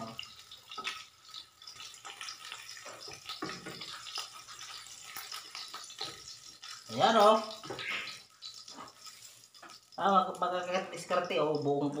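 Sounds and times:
egg sizzling in a frying pan: 0:00.0 - 0:12.0
metal spatula scraping a pan: 0:00.5 - 0:10.0.

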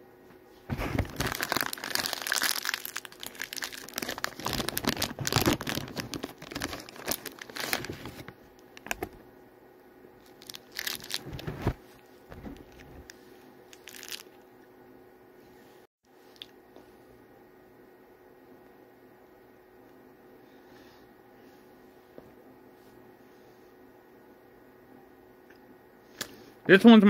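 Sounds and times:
plastic snack bag crinkling: 0:00.9 - 0:08.2, 0:10.3 - 0:11.5, 0:13.7 - 0:14.4.

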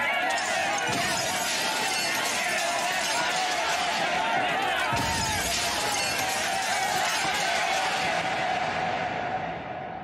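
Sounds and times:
crowd of voices: 0:00.0 - 0:10.0
glass shattering and clinking: 0:00.1 - 0:08.1.

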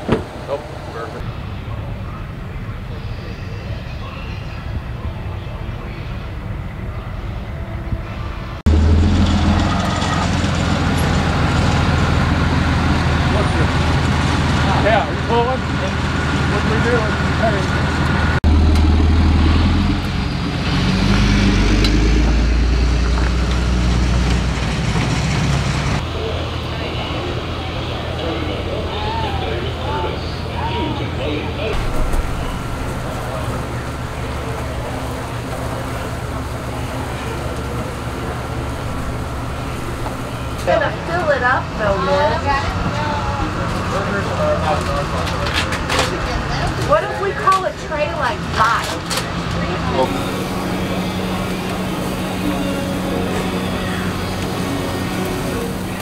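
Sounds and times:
vehicle engines rumbling: 0:00.0 - 0:56.0.

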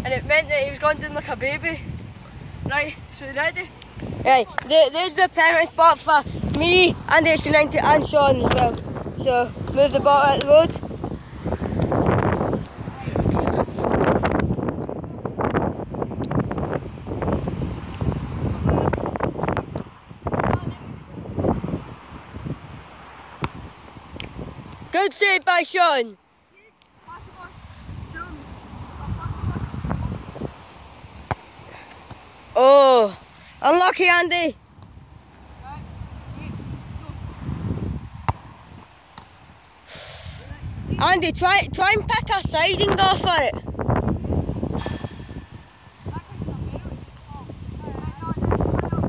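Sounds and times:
wind buffeting microphone: 0:00.0 - 0:26.0, 0:27.1 - 0:49.0.

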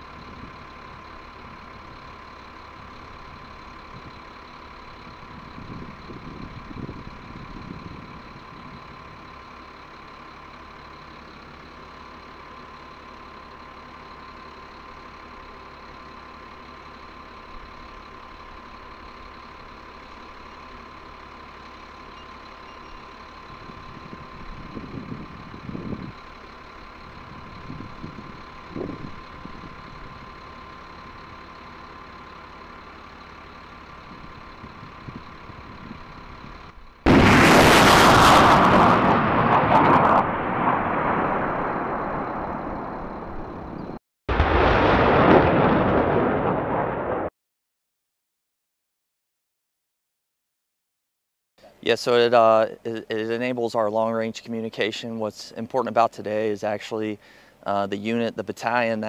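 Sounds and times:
truck diesel engine running: 0:00.0 - 0:46.9, 0:51.6 - 0:59.0
constant high whine: 0:00.0 - 0:47.3, 0:51.6 - 0:59.0.

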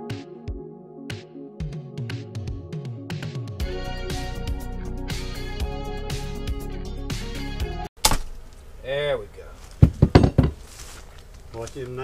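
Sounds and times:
background music: 0:00.0 - 0:07.9
tool knocking on wood: 0:09.8 - 0:10.6.

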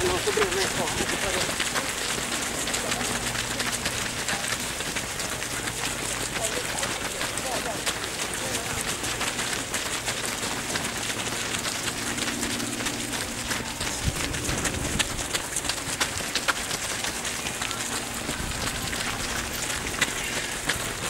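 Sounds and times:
runners' footsteps on gravel: 0:00.0 - 0:21.0.

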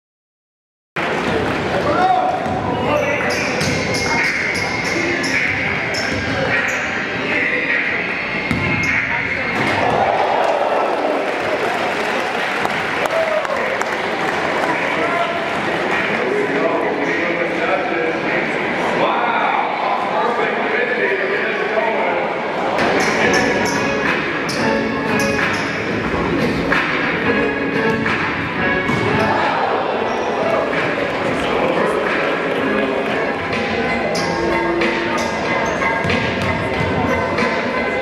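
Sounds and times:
crowd chatter: 0:01.0 - 0:38.0.

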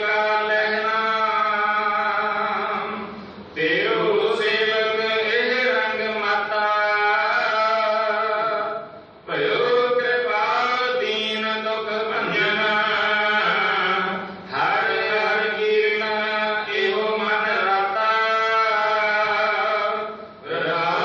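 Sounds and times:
devotional chanting: 0:00.0 - 0:21.0.

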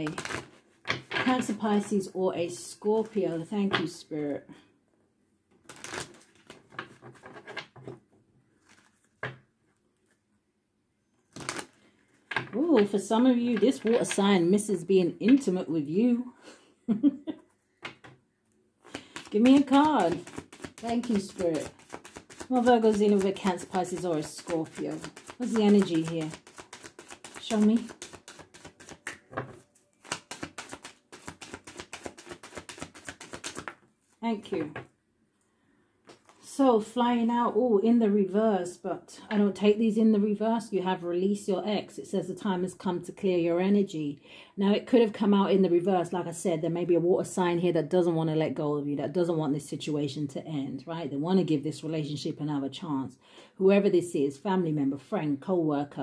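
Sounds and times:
cards being shuffled: 0:00.0 - 0:01.9, 0:02.9 - 0:03.3, 0:05.6 - 0:07.6, 0:08.6 - 0:09.2, 0:11.3 - 0:11.8, 0:18.8 - 0:34.2, 0:36.1 - 0:36.4.

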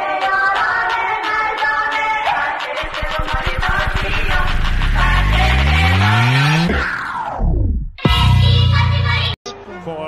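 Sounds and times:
background music: 0:00.0 - 0:07.4, 0:08.0 - 0:10.0
tape stop effect: 0:02.8 - 0:09.3
rising synth tone: 0:04.8 - 0:08.4.

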